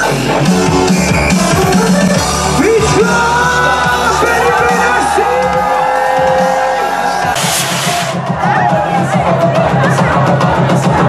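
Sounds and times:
electronic dance music: 0.0 - 11.0
crowd cheering: 1.0 - 11.0
loud hiss: 7.2 - 8.2.

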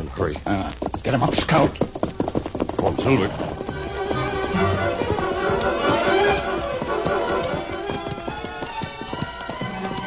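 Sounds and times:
horse hoofbeats at a run: 0.0 - 10.0
music bridge: 3.7 - 10.0.

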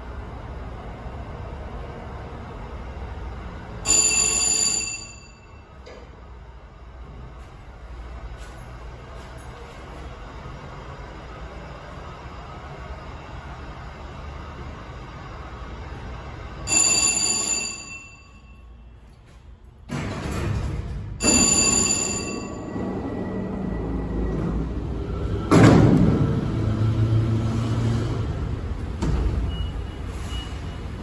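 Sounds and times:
elevator car rumbling: 0.0 - 31.0
elevator chime: 3.8 - 5.9, 16.5 - 19.0, 21.2 - 24.6.

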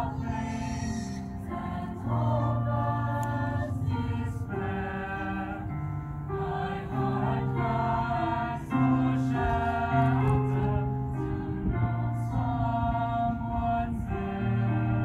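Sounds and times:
youth choir singing in harmony: 0.0 - 15.0.

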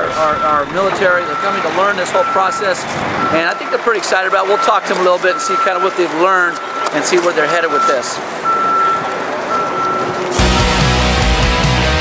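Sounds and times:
outdoor background noise: 0.0 - 10.7
vehicle reversing alarm beeping: 0.0 - 11.4
loud rock music: 10.4 - 12.0.

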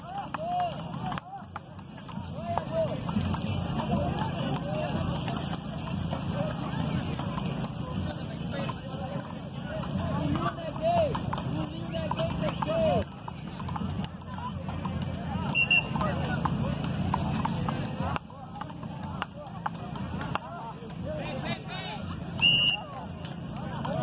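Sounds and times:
wooden paddles hitting ball: 0.0 - 24.0.

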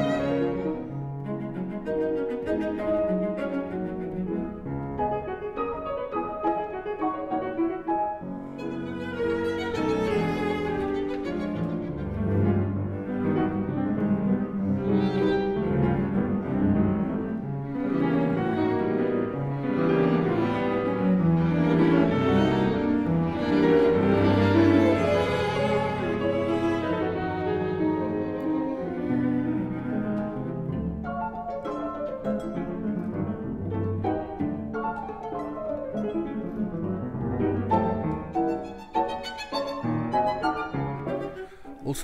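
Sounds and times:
cello bowing low notes: 0.0 - 5.2, 8.4 - 42.0
violin playing: 0.0 - 7.4, 8.2 - 42.0
piano accompaniment: 0.0 - 42.0.

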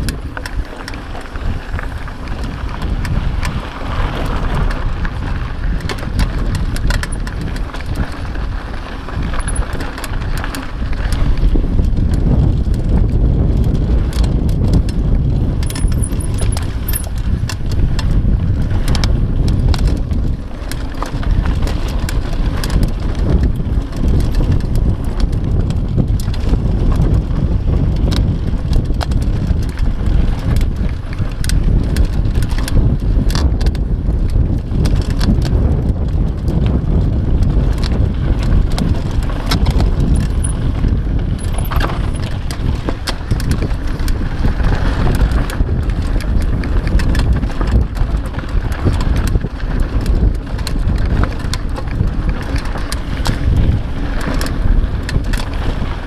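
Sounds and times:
bike rattling and clicking: 0.0 - 56.0
tyres rumbling on dirt: 0.0 - 56.0.

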